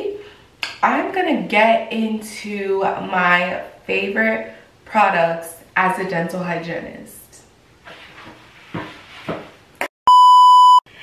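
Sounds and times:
electronic censor bleep: 10.1s - 10.9s.

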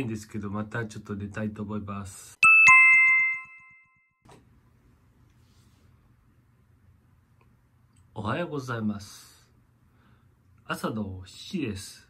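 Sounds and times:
two-note chime: 2.4s - 4.2s.

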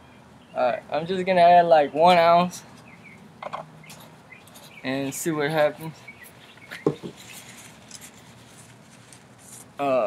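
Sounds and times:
faint rustling: 6.1s - 9.8s
plastic bottle being handled: 6.6s - 9.8s.

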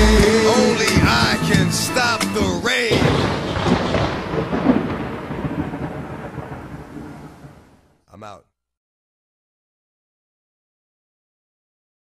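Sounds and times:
thunder and rain sound effect: 2.9s - 8.0s.

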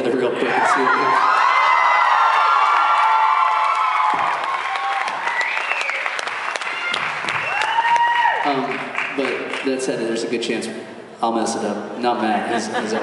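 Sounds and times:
high-pitched shouts and whoops: 0.5s - 8.5s
audience applauding: 1.6s - 9.8s.

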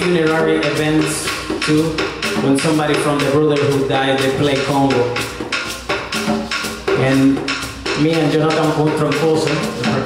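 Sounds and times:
hand drums playing a rhythm: 0.0s - 10.0s.

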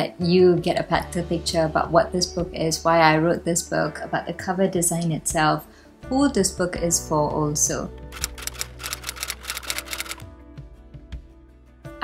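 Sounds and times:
soft background music: 0.0s - 12.0s
typewriter keys clacking: 8.2s - 10.2s.

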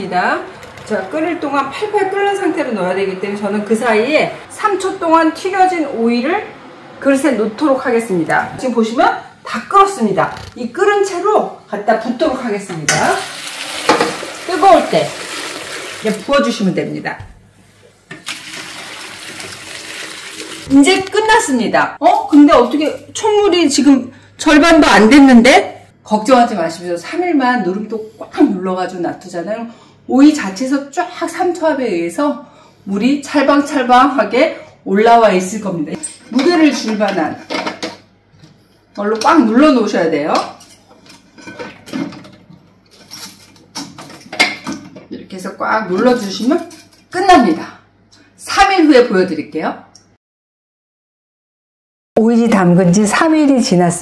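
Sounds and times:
liquid pouring and splashing: 13.2s - 16.3s, 18.2s - 20.7s.

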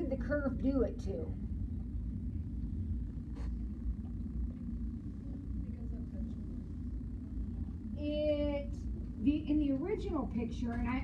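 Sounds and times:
low classroom rumble: 0.0s - 11.0s.

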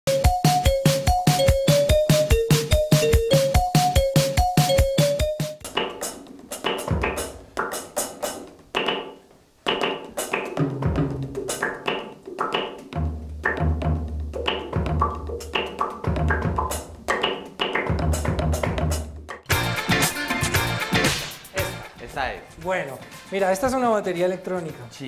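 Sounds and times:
electronic drum kit beat: 0.1s - 23.8s.

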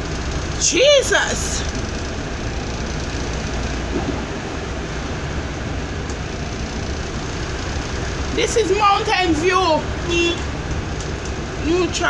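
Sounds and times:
engine low rumble: 0.0s - 12.0s.

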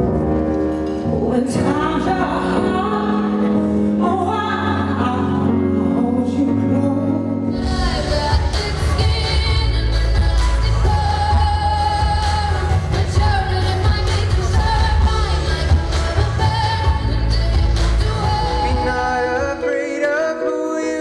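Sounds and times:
pop band with heavy bass: 0.0s - 21.0s
person singing: 0.8s - 21.0s.

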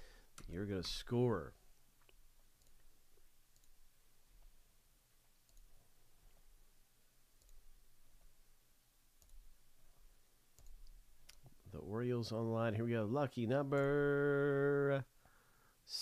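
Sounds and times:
quiet room hum: 0.0s - 16.0s
faint computer mouse clicks: 3.5s - 3.8s, 5.4s - 5.8s, 7.4s - 7.6s.

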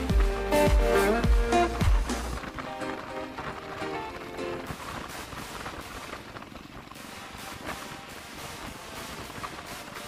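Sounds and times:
background music with beat: 0.0s - 6.0s, 7.0s - 10.0s.

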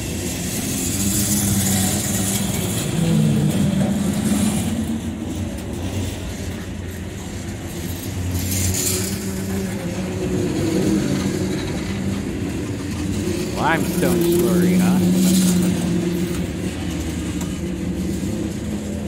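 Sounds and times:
freight train rumbling on rails: 9.3s - 13.6s.

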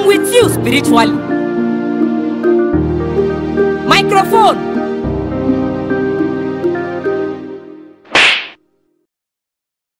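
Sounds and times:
background music: 0.0s - 9.0s.

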